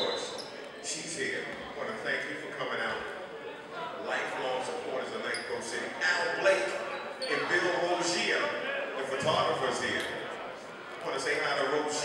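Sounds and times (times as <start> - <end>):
chatter of voices in hall: 0.0 - 12.0.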